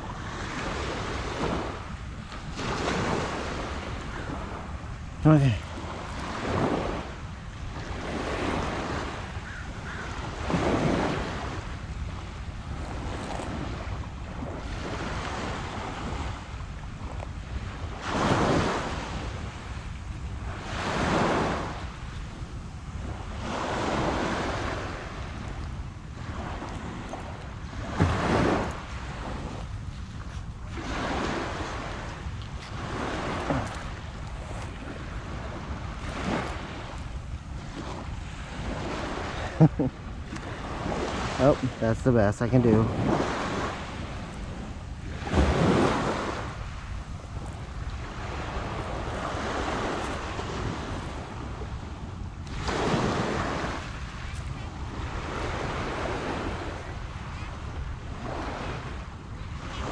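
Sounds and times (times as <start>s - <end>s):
wind rumble on microphone: 0.0s - 59.9s.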